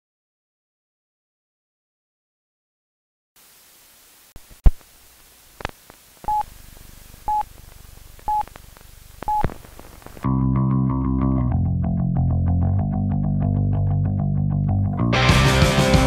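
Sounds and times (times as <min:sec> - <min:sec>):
short beeps: 0:06.3 - 0:06.5
distorted electric guitar riff: 0:09.4 - 0:16.0.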